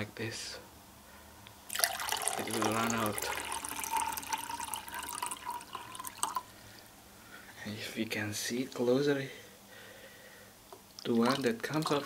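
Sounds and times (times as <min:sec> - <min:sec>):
water trickling into plastic cup: 0:01.7 - 0:06.5, 0:11.0 - 0:12.0.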